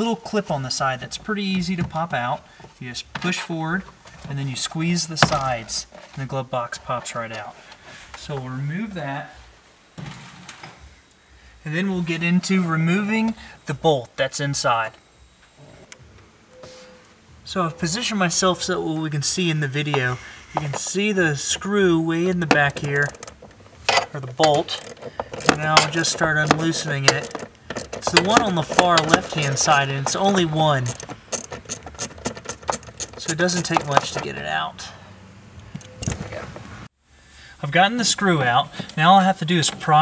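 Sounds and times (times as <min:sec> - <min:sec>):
faint background noise: 0:00.0 - 0:40.0
handling of tool and trim: 0:19.9 - 0:21.1, 0:22.4 - 0:34.4.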